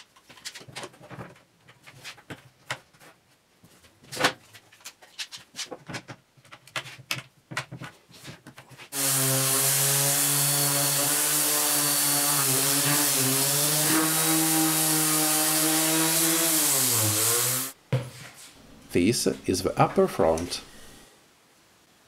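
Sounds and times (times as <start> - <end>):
orbital sander running: 9.0 - 17.8.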